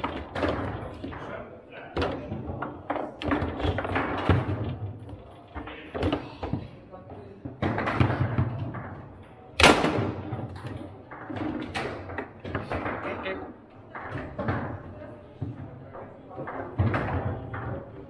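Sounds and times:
foosball clacking off players: 0.0s - 6.8s, 7.4s - 18.0s.

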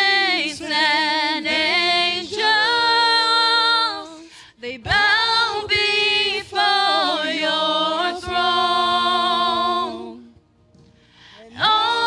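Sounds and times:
group singing worship song: 0.0s - 10.4s, 11.2s - 12.0s.

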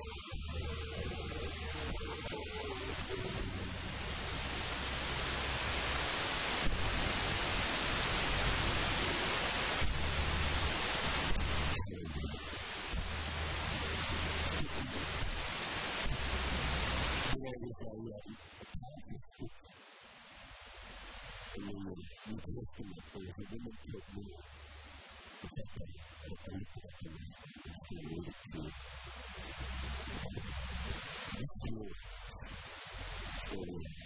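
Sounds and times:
static hiss: 0.0s - 34.0s.

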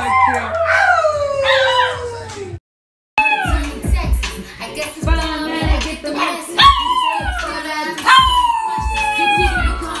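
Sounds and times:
dog howling: 0.0s - 2.6s, 6.6s - 10.0s
hip-hop song: 3.2s - 10.0s.

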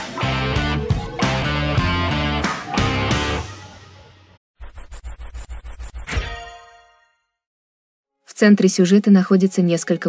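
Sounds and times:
rock music: 0.0s - 3.7s.

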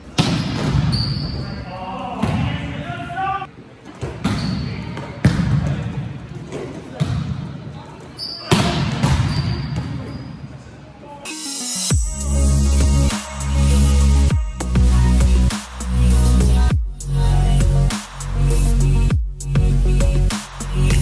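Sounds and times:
shoe squeaks on court: 0.4s - 1.6s, 4.3s - 5.0s, 8.1s - 10.6s.

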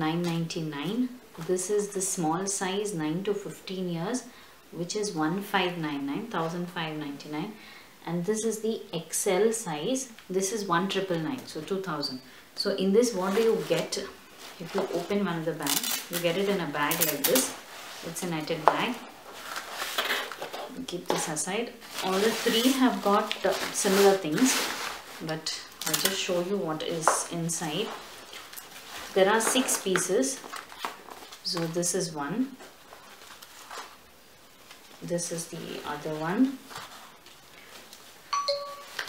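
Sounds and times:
person speaking: 0.0s - 19.1s, 20.7s - 28.0s, 29.1s - 30.5s, 35.0s - 36.6s
faint handling noise: 13.0s - 31.8s
plastic bag rustling: 13.0s - 31.8s, 32.6s - 35.0s, 35.6s - 39.0s
two-note electronic chime: 38.3s - 39.0s.

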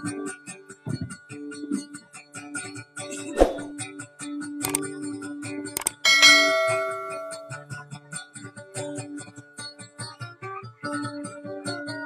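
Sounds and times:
quick double click: 4.6s - 4.9s, 5.8s - 6.0s
bright bell ding: 5.8s - 7.6s
acoustic guitar plucked: 5.8s - 7.7s.

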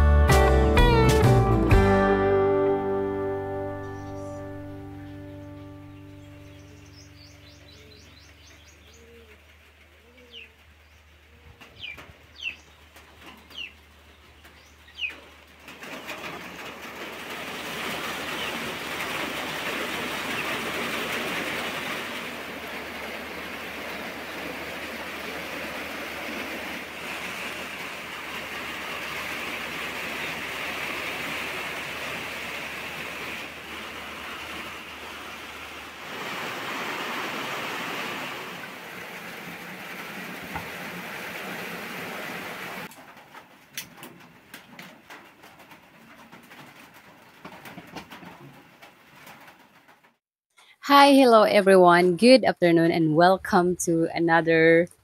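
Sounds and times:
steady rain falling: 3.9s - 50.2s.

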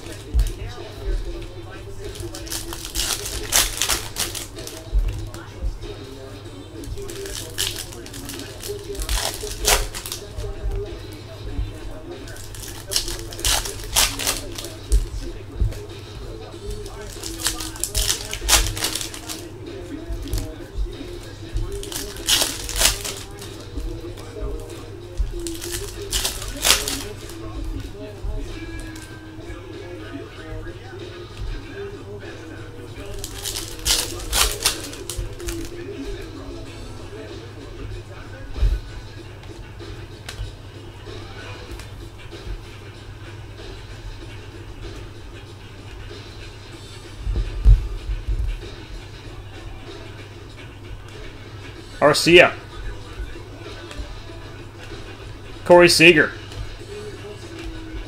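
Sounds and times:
card pack wrappers crinkling: 0.0s - 5.5s, 6.8s - 11.4s, 12.0s - 29.2s, 32.8s - 36.0s
cards being flicked through: 0.0s - 29.2s, 32.9s - 36.3s.

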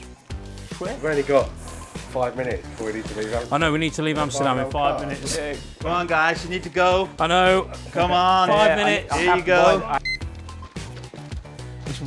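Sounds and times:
background music: 0.0s - 12.0s
payment terminal beep: 10.0s - 10.3s.

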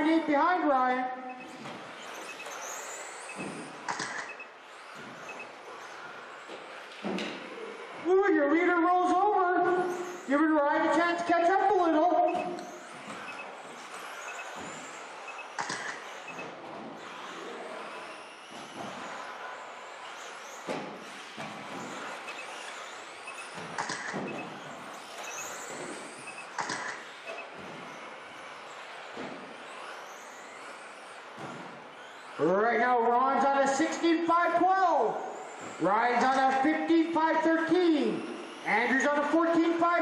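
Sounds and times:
toy car motors whining: 0.0s - 40.0s
toy cars knocking on track: 12.9s - 17.4s, 18.0s - 32.3s.

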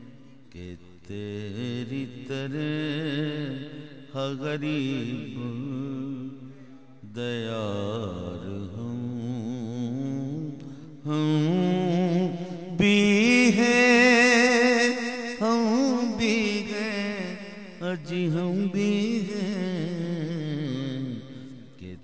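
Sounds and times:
man chanting devotional song: 0.0s - 22.0s.

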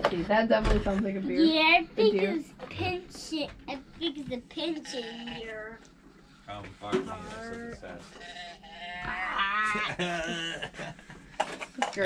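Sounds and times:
wavering bleat call: 8.2s - 9.9s.

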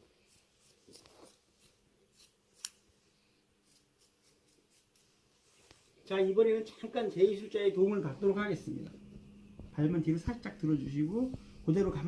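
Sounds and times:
scissors snipping fabric: 0.3s - 2.8s, 3.6s - 5.0s.

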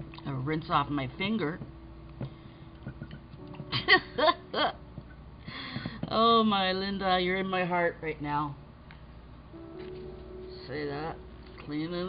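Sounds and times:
woman laughing: 3.7s - 4.8s.

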